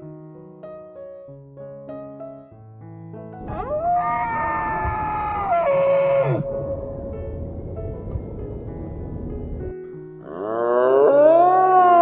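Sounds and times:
soft piano notes: 0:00.0 - 0:10.2
long animal call: 0:03.4 - 0:06.6, 0:10.2 - 0:12.0.

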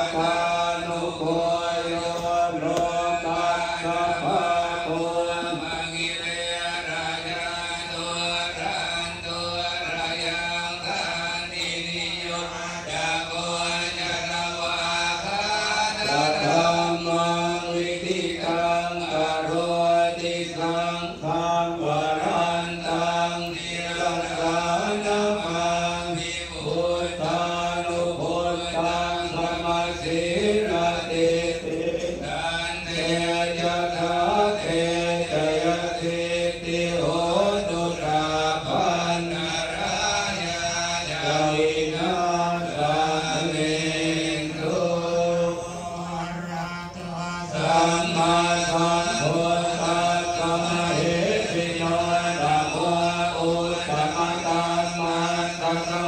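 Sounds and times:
monks chanting in unison: 0:00.0 - 0:56.0.

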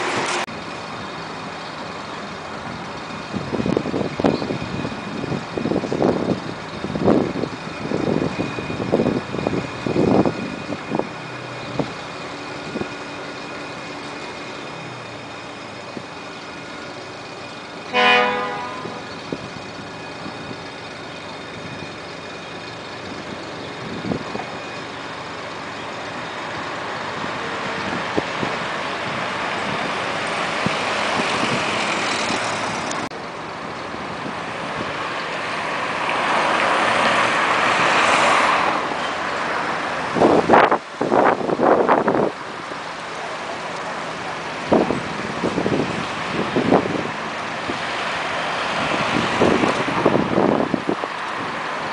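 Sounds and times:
approaching vehicles: 0:00.0 - 0:51.9
vehicle horn toot: 0:17.9 - 0:19.2.

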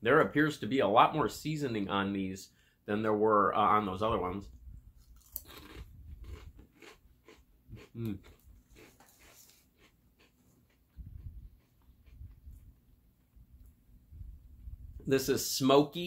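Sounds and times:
cracker crunching: 0:04.9 - 0:12.8.

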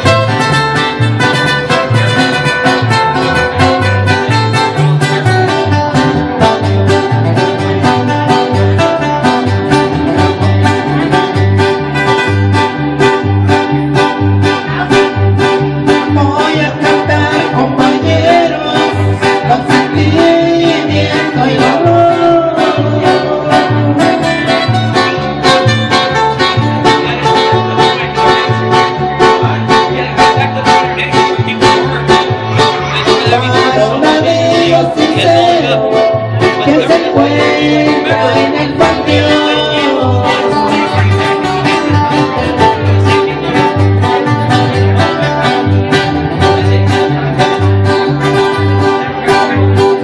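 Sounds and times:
acoustic guitars strumming chords: 0:00.0 - 0:50.0
electric bass two-beat rhythm: 0:00.0 - 0:50.0.

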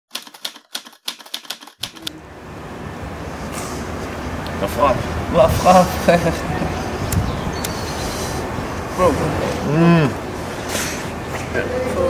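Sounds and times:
typewriter key clacks: 0:00.1 - 0:02.1
low street ambience: 0:01.8 - 0:12.0.

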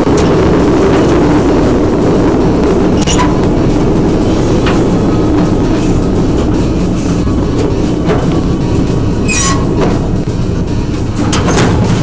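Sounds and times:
mine train rumbling on track: 0:00.0 - 0:12.0
high-pitched wheel squeal: 0:03.0 - 0:03.5, 0:09.1 - 0:10.0.

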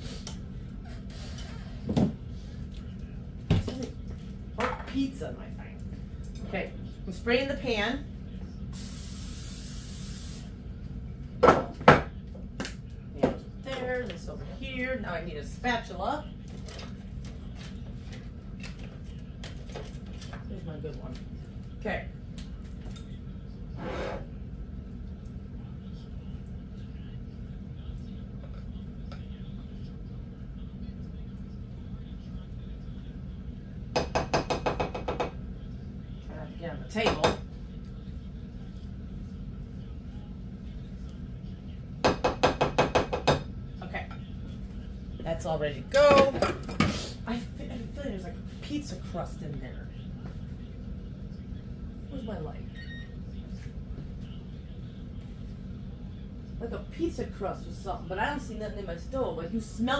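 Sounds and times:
steady low hum: 0:00.0 - 0:59.9
cooking spray hissing: 0:08.7 - 0:10.6.

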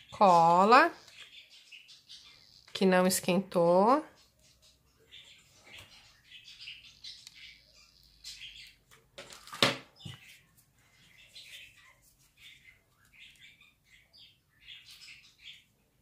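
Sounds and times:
small bird chirping: 0:00.0 - 0:03.4, 0:04.0 - 0:09.2, 0:09.9 - 0:16.0.

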